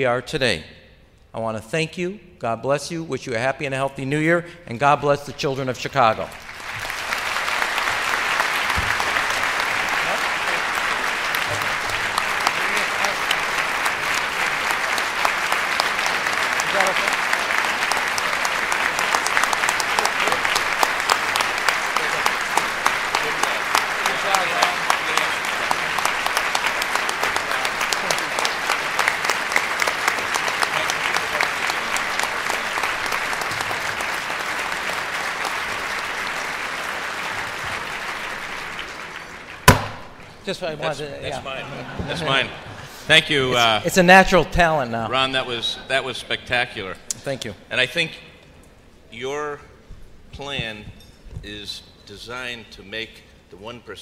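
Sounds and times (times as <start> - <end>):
audience applauding: 6.2 - 43.8.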